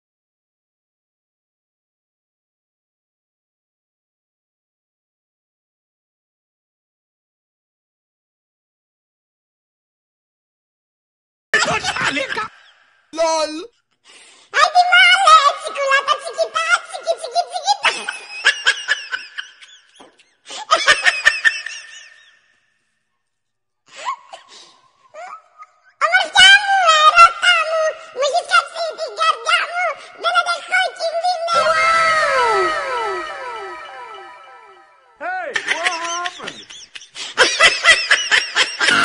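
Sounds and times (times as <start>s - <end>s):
laughter: 11.6s - 12.8s, 17.8s - 22.4s, 35.5s - 39.0s
short sounds: 31.5s - 35.2s
high-pitched giggling: 35.6s - 39.0s.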